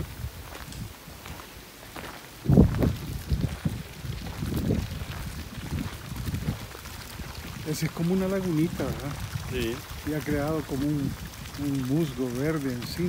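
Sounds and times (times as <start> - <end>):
footsteps on dirt path: 0.0 - 7.6.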